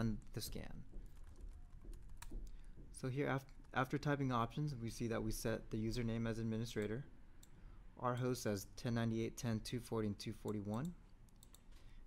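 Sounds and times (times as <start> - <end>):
keyboard keys clicking: 1.0 - 2.6.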